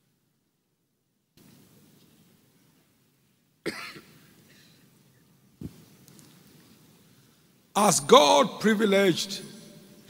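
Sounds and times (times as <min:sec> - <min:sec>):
man coughing: 0:03.6 - 0:04.8.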